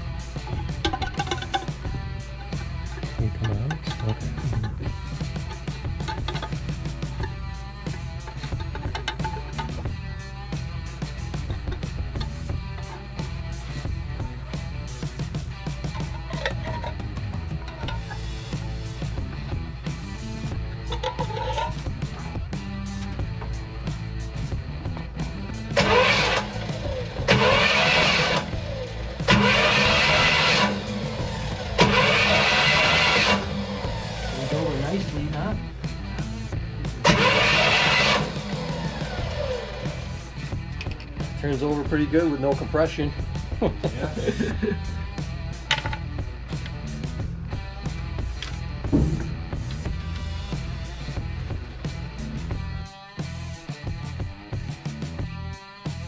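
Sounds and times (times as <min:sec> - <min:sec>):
background music: 0:00.0 - 0:56.0
car engine cranking on starter: 0:15.0 - 0:19.2, 0:25.5 - 0:35.5, 0:36.3 - 0:41.0.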